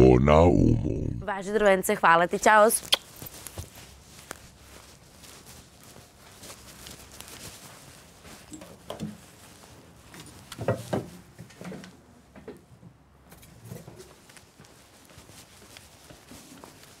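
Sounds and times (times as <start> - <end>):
footsteps of boots outdoors: 1.6 - 17.0.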